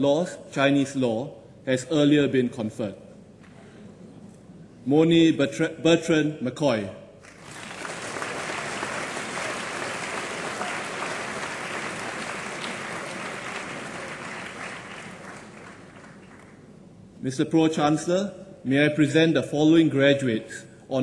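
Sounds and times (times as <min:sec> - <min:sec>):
audience applauding: 0:07.2 - 0:16.6.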